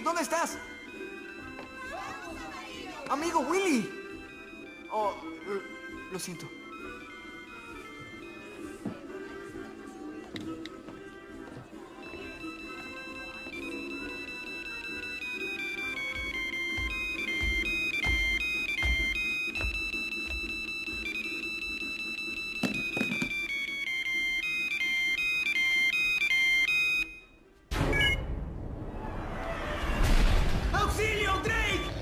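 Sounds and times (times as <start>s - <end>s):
phone ringtone melody: 0.0s - 8.9s, 11.9s - 28.2s
low thuds of score music: 3.0s - 22.4s.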